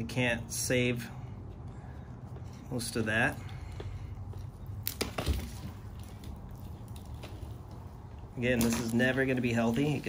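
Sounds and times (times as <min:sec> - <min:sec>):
pruning shears cracking through stem: 0:08.5 - 0:09.3.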